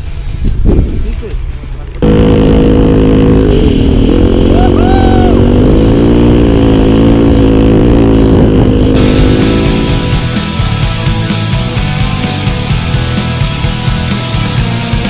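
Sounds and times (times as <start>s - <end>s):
dirt bike engine running: 2.0s - 15.0s
music with a beat: 9.0s - 15.0s.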